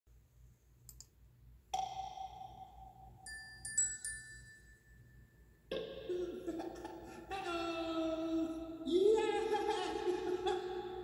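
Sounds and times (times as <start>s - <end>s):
mouse clicks: 0.8s - 1.2s
bell-like chime: 2.2s - 5.7s.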